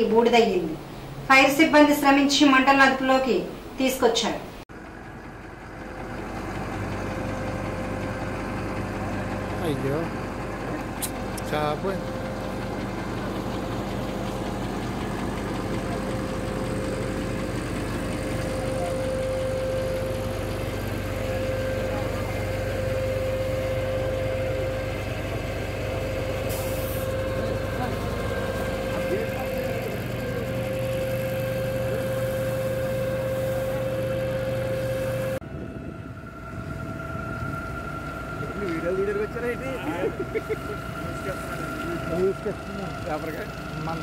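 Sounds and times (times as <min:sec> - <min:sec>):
people talking: 0:00.0 - 0:04.5, 0:09.6 - 0:12.2, 0:18.6 - 0:19.2, 0:21.4 - 0:24.7, 0:27.2 - 0:31.0, 0:38.4 - 0:44.0
vehicle engine running: 0:04.7 - 0:44.0
steady higher tone: 0:07.0 - 0:44.0.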